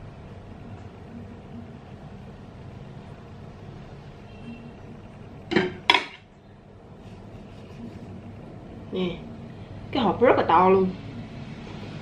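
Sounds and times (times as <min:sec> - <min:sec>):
low steady background hum: 0:00.0 - 0:12.0.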